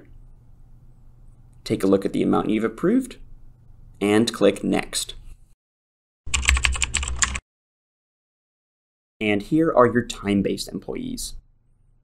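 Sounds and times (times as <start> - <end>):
keyboard typing clicks: 6.3 - 7.4.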